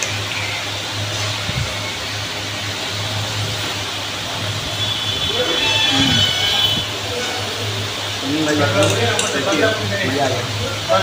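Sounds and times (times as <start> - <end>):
low machine hum with air hiss: 0.0 - 11.0.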